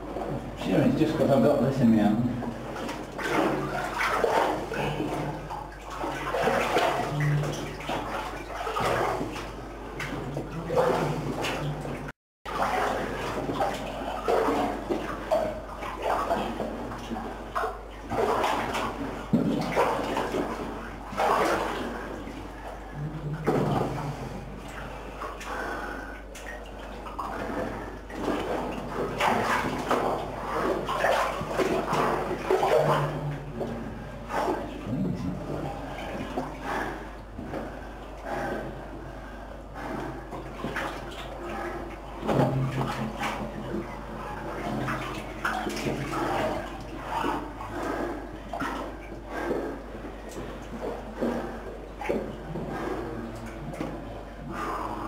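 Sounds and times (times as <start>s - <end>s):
water sloshing and splashing: 0.0s - 55.0s.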